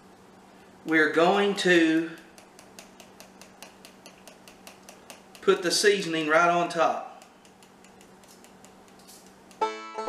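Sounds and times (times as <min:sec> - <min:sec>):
plastic spice shaker shaking: 0:07.2 - 0:09.6.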